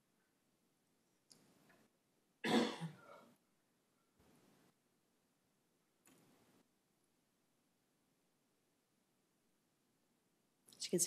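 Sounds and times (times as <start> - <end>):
person coughing: 2.4 - 3.2.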